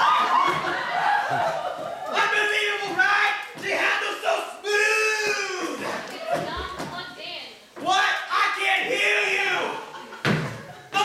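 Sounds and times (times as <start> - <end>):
voices: 0.0 - 11.0.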